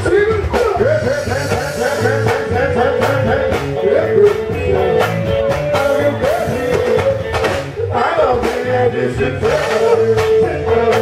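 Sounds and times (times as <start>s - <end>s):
drums: 0.0s - 11.0s
electric guitar: 0.0s - 11.0s
person singing: 0.2s - 11.0s.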